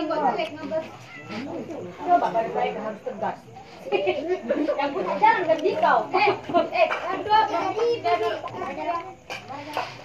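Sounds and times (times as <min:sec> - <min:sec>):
people's voices: 0:00.0 - 0:10.0
cat meowing: 0:00.7 - 0:01.5.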